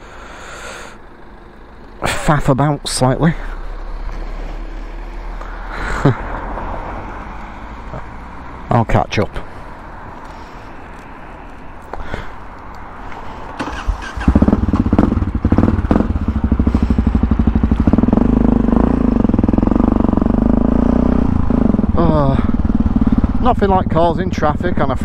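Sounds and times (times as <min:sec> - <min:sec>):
motorcycle engine: 0:00.0 - 0:08.9, 0:13.4 - 0:25.0.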